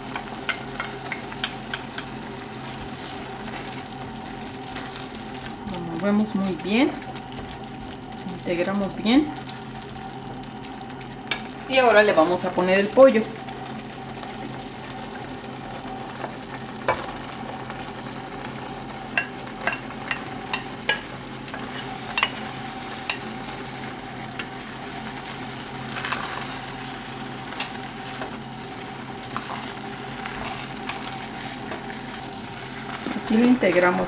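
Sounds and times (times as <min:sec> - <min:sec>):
sauce sizzling in a clay pot: 0:00.0 - 0:34.0
steady low hum: 0:00.0 - 0:34.0
wooden spoon stirring: 0:27.5 - 0:34.0.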